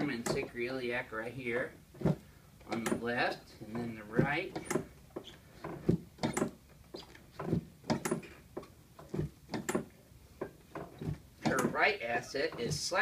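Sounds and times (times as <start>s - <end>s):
sharp knocks and clicks: 1.9s - 11.9s.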